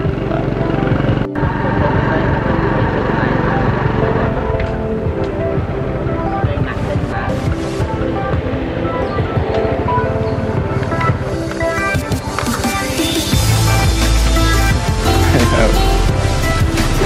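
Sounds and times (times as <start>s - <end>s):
music with held notes: 0.0s - 17.0s.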